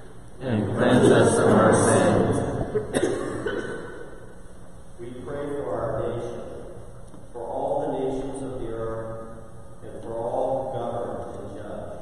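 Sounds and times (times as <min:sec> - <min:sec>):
congregation reciting a prayer: 0:00.4 - 0:04.0.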